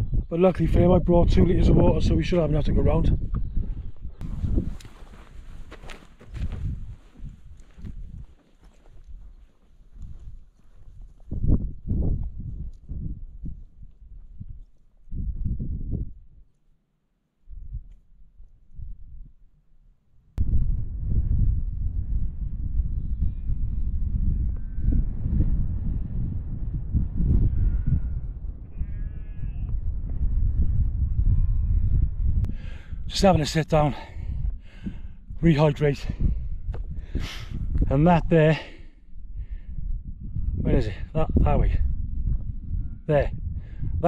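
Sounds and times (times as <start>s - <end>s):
wind rumble on microphone: 0.0s - 16.5s, 17.4s - 19.5s, 20.2s - 44.0s
sheep bleating: 28.7s - 29.8s.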